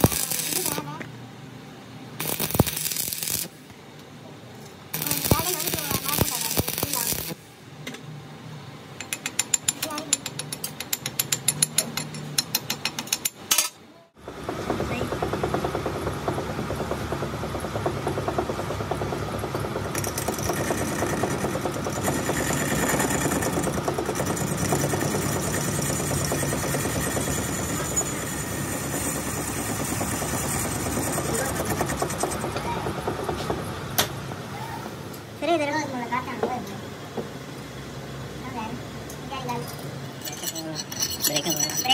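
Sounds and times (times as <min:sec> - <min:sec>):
metal lathe running: 0:14.3 - 0:33.5.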